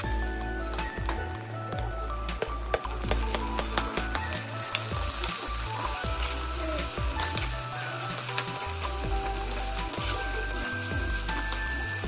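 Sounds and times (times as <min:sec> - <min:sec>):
oil popping: 0:00.0 - 0:12.0
vegetables sizzling in hot oil: 0:02.4 - 0:12.0.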